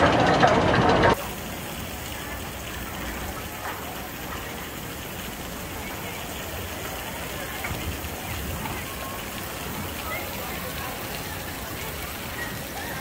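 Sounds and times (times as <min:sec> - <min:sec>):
amusement park background noise: 0:00.0 - 0:13.0
faint distant voices: 0:00.0 - 0:13.0.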